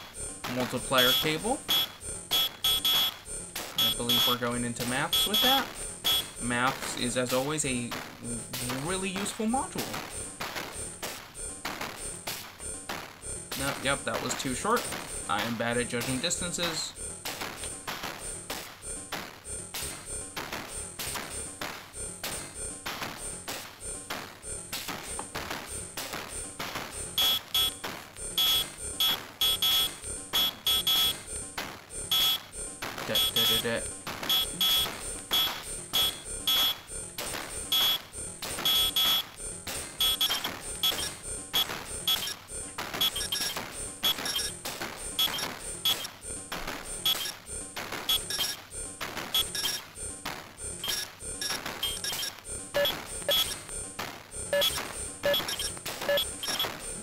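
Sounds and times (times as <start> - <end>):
glitchy synth stuttering bursts: 0.0 - 57.0.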